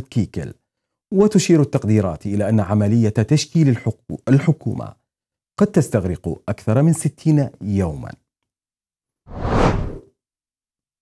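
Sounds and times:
whoosh sound effect: 9.3 - 10.0.

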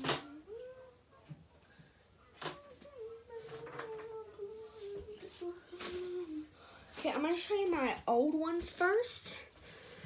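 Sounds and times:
woman humming: 0.0 - 1.4, 2.4 - 6.6.

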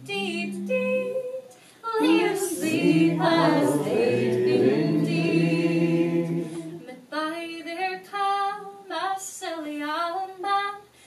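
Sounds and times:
woman singing unaccompanied: 0.0 - 5.2, 6.8 - 10.9.

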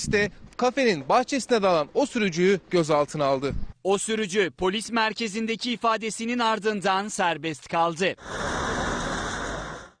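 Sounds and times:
traffic rumble: 8.2 - 10.0.

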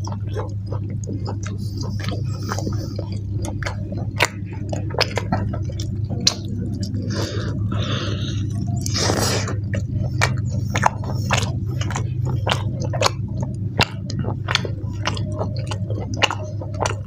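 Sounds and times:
steady low hum: 0.0 - 17.0
wet chewing: 0.0 - 17.0.

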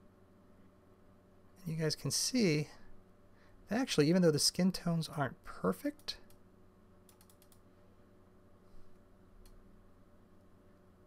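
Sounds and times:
computer keyboard clicks: 7.1 - 7.6.

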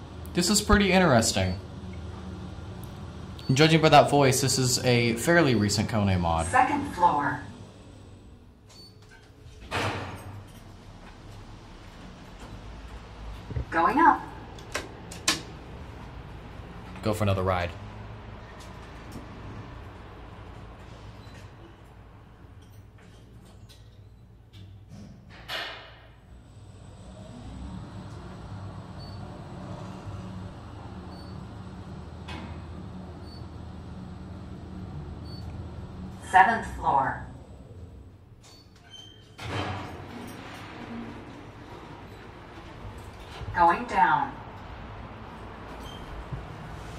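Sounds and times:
elevator doors sliding open: 0.4 - 17.0, 18.0 - 46.9
elevator doors closing clicks: 8.6 - 15.8, 27.1 - 37.0, 38.3 - 43.9
elevator door thump: 9.7 - 10.5.

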